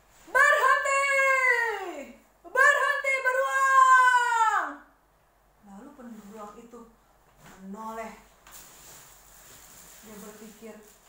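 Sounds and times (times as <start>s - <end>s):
woman shouting: 0.3s - 4.9s.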